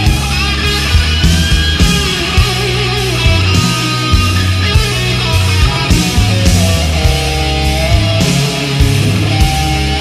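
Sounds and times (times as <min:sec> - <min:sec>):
instrumental heavy metal music: 0:00.0 - 0:10.0.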